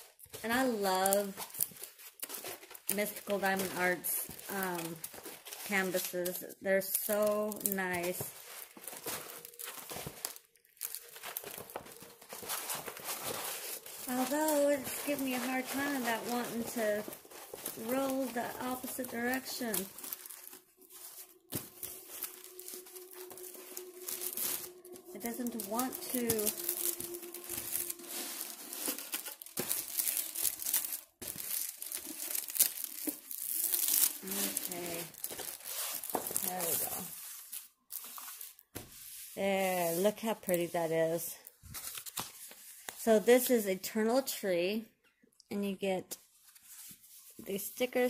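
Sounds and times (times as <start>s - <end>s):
canvas and plastic film crinkling: 0.0s - 43.5s.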